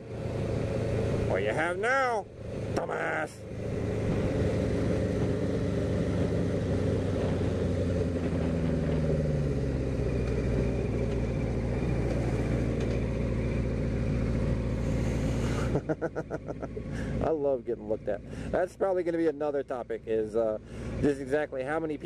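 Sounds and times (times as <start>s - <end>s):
motorcycle engine running: 0.0s - 17.4s.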